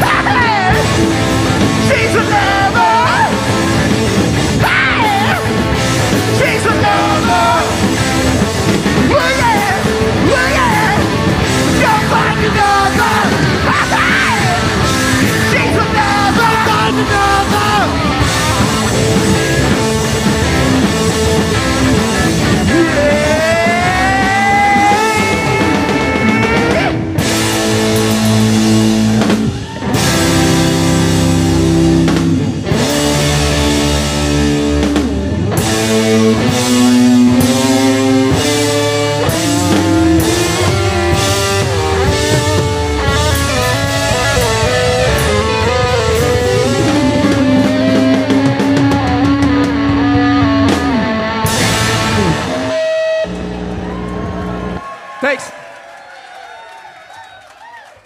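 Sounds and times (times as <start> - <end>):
bass guitar: 0.0 - 54.9
distorted electric guitars: 0.0 - 54.9
drum kit: 0.0 - 54.9.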